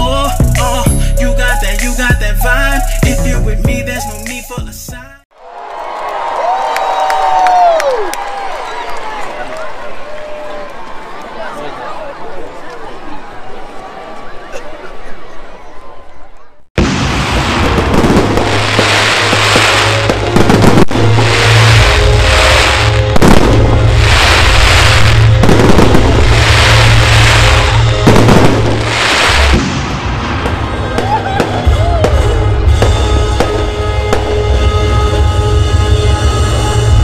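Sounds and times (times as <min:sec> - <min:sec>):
music with heavy bass: 0:00.0 - 0:05.2
fireworks bursting: 0:16.8 - 0:35.3.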